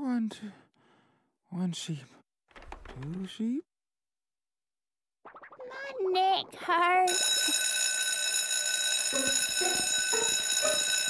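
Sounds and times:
electric school bell ringing: 7.1s - 11.0s.

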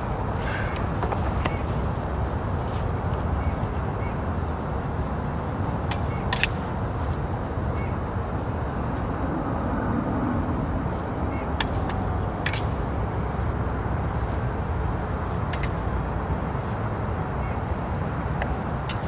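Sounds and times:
low background rumble: 0.0s - 18.8s.

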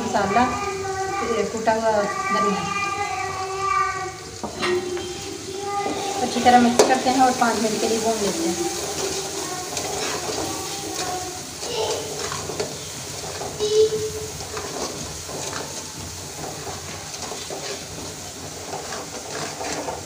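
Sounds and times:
onions sizzling in oil: 0.0s - 20.0s
metal spatula scraping pan: 4.4s - 20.0s.

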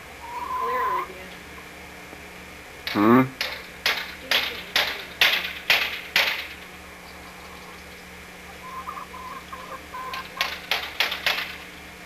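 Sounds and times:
steady low hum: 0.0s - 12.0s
sharp clacking knocks: 2.8s - 6.6s, 10.1s - 11.6s.

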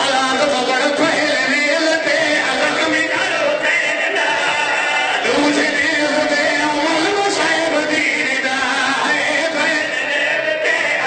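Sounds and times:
men chanting into a microphone: 0.0s - 11.0s.

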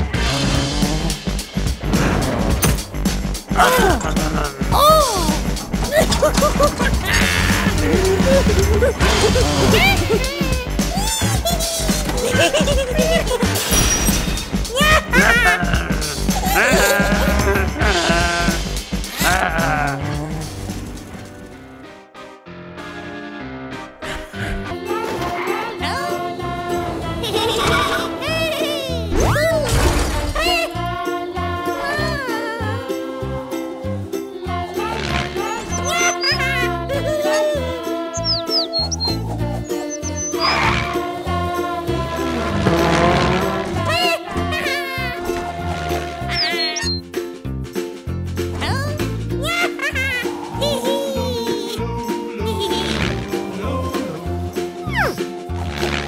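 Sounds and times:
background music: 0.0s - 56.0s
cartoon character vocal sounds: 3.6s - 6.4s, 7.0s - 13.4s, 19.2s - 20.5s, 34.8s - 41.0s, 43.8s - 45.2s, 46.2s - 47.0s, 54.8s - 55.3s
cartoon tyre screech: 35.4s - 36.4s, 38.2s - 41.0s, 46.3s - 47.0s.

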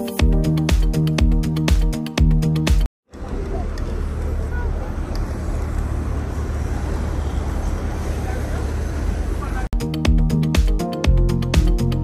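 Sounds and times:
road traffic rumble: 3.0s - 9.8s
faint voices of passers-by: 3.1s - 9.7s.

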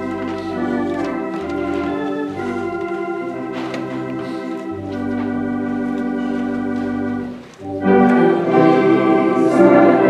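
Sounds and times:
organ playing a hymn: 0.0s - 10.0s.

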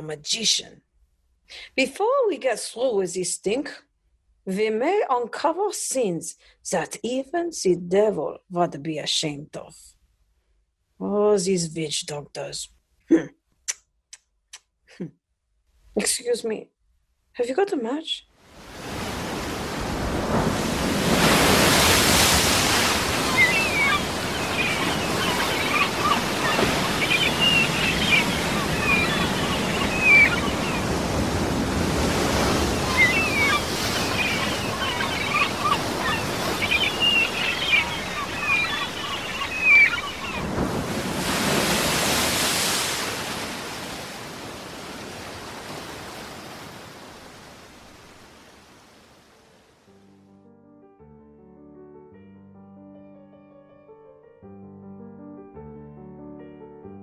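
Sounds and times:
ocean waves: 18.4s - 50.0s.

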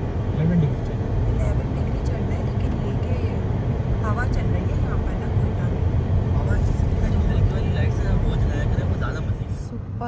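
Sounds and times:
car driving rumble inside cabin: 0.0s - 10.0s.

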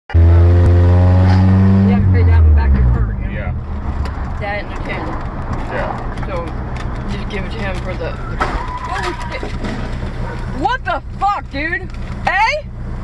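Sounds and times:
loud low drone: 0.1s - 4.0s
road and engine noise: 0.1s - 13.0s.

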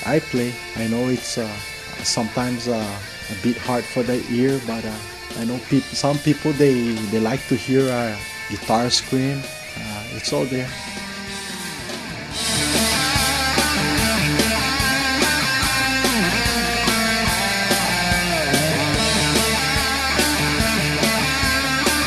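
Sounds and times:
electric guitar lead: 0.0s - 22.0s
rock band playing: 0.0s - 22.0s.

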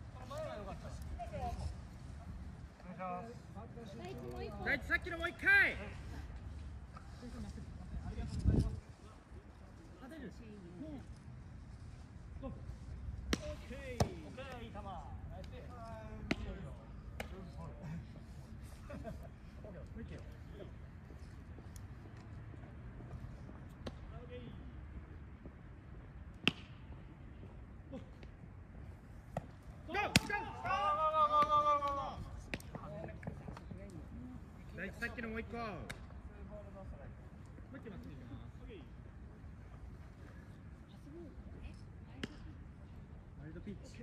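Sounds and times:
baseball smacking into glove: 13.2s - 14.2s, 26.4s - 26.8s, 29.3s - 30.4s
bat cracking a baseball: 13.2s - 14.2s, 26.4s - 26.8s, 29.3s - 32.8s
players shouting: 29.8s - 32.2s.

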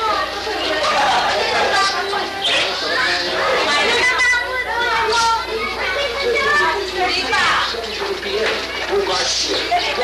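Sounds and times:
children's voices: 0.0s - 10.0s
people chattering and calling out: 0.0s - 10.0s.

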